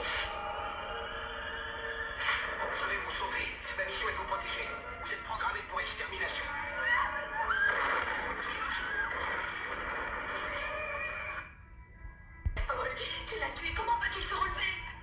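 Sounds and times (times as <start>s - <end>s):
film soundtrack music: 0.0s - 15.0s.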